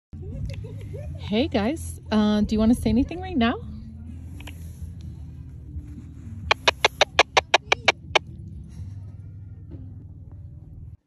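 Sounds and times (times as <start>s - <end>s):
short electronic chirps from radio: 6.5s - 8.2s.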